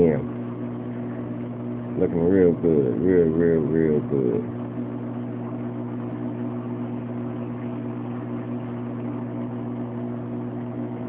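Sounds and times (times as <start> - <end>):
aquarium equipment humming: 0.0 - 11.0.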